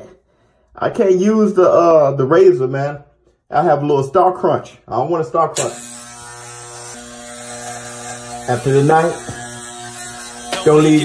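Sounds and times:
electric hair clippers buzzing: 5.6s - 11.0s.

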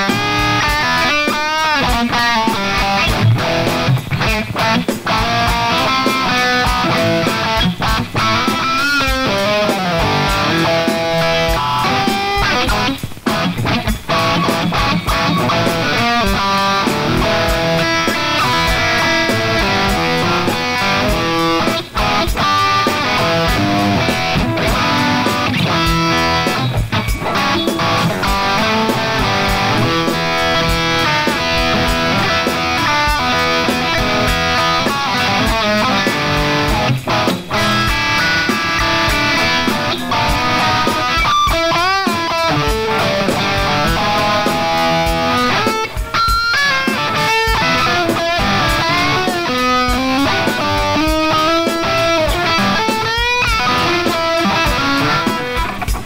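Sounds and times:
electric guitar lead: 0.0s - 56.0s.

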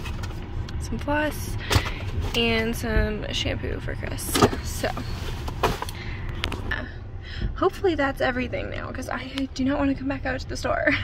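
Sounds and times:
low rumble inside a car: 0.0s - 11.0s.

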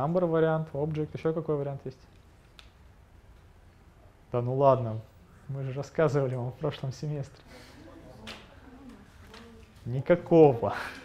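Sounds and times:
muffled murmuring voices: 7.4s - 9.9s.

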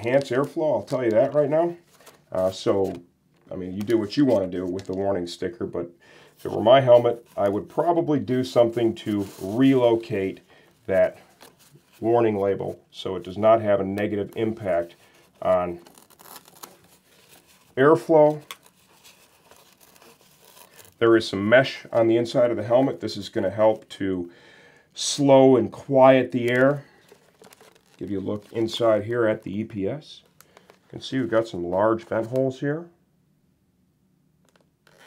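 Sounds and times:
fabric rustling in hand: 0.0s - 5.2s, 6.4s - 23.8s, 25.7s - 29.9s.

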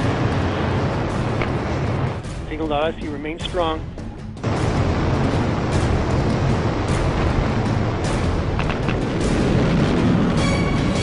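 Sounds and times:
dramatic orchestral music: 4.0s - 11.0s.

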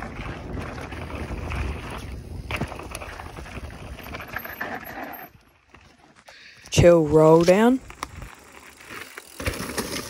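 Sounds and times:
bike tyres on gravel: 0.0s - 10.0s
bike knocks and rattles: 8.0s - 10.0s.

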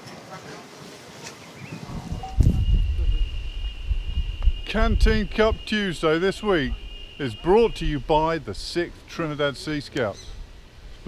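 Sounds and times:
wind buffeting microphone: 1.6s - 9.0s, 10.2s - 11.0s
steady high-pitched tone: 2.3s - 9.8s.

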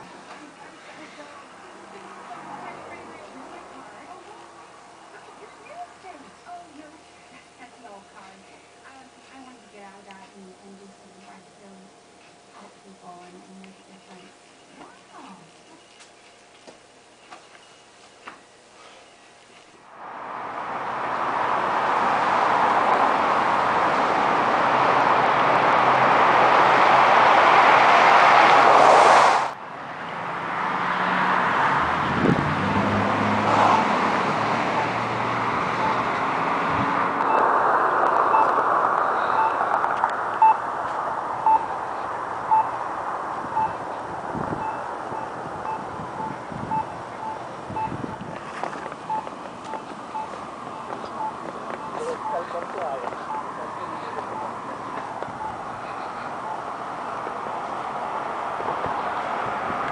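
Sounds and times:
street traffic: 0.0s - 59.9s
broad rushing noise: 19.8s - 59.9s
short high electronic beeps: 38.2s - 39.7s, 41.4s - 41.8s, 43.6s - 43.8s, 44.6s - 48.0s, 50.2s - 52.6s, 53.2s - 53.5s.

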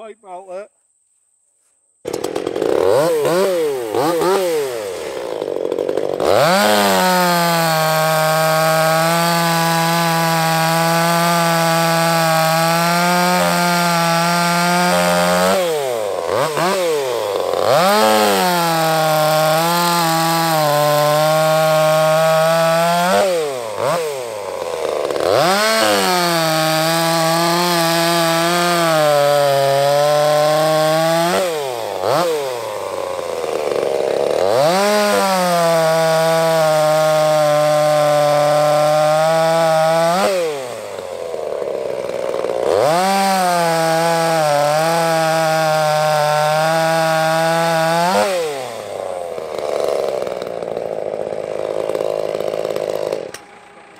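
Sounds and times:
chainsaw cutting logs: 2.0s - 53.9s.

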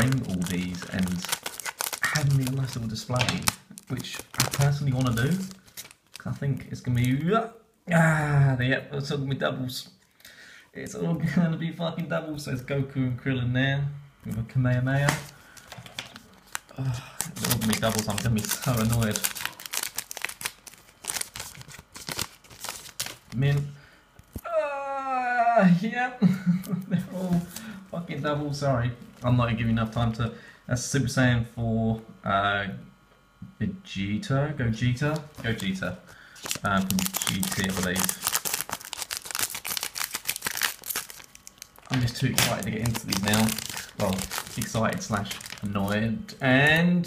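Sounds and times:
plastic wrapper crinkling: 0.0s - 7.2s, 15.0s - 24.4s, 35.0s - 46.1s
scissors snipping plastic: 36.4s - 45.7s.

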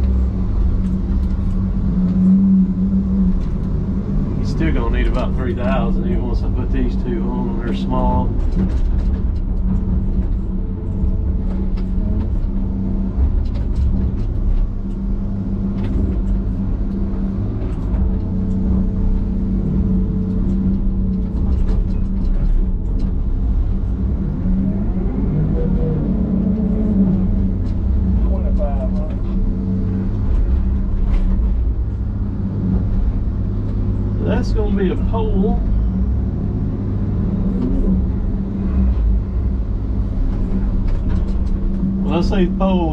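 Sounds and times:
diesel engine running: 0.0s - 42.9s.

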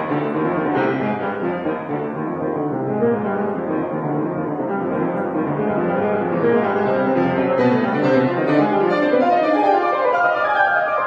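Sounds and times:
solo piano classical music: 0.0s - 11.0s.

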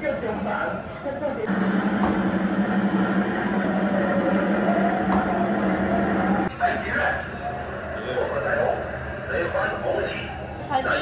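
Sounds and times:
voices: 1.2s - 11.0s
motor humming: 1.5s - 6.5s.

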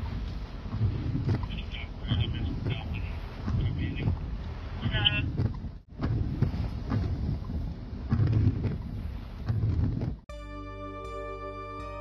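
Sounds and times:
wind buffeting microphone: 0.0s - 10.3s.

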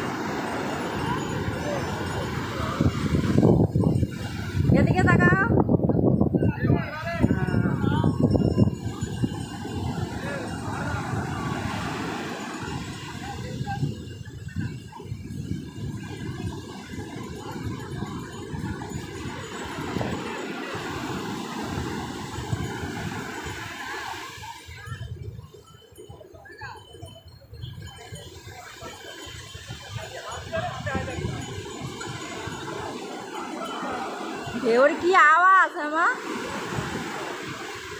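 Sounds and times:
sea waves breaking on beach: 0.0s - 5.6s, 6.8s - 37.9s
wind rumbling on microphone: 0.0s - 37.9s.

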